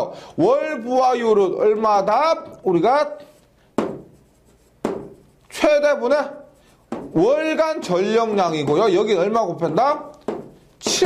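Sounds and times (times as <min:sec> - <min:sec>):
chalk writing on chalkboard: 0:03.2 - 0:11.0.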